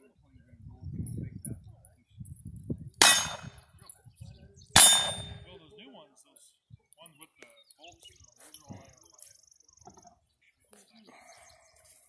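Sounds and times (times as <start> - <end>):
loud metallic clangs: 3.0 - 3.6, 4.8 - 5.5.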